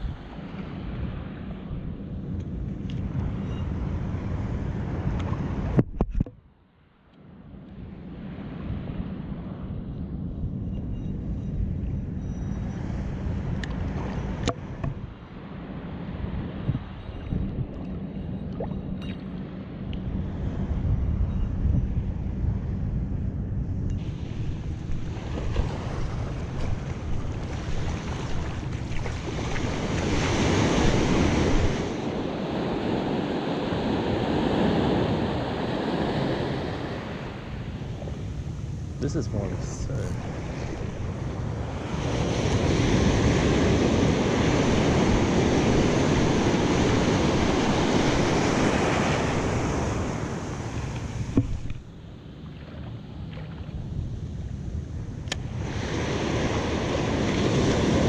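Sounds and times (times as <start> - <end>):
wind buffeting microphone: 0.0 - 6.4, 7.9 - 52.0
waves washing up sand: 24.0 - 51.8, 52.5 - 58.0.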